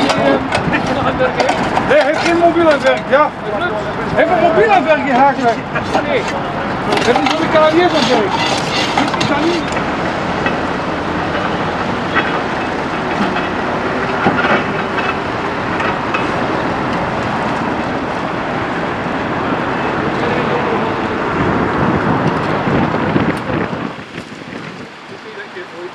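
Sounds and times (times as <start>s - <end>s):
steel tipper body rattling: 0.0s - 20.2s
heavy diesel truck engines: 0.0s - 25.9s.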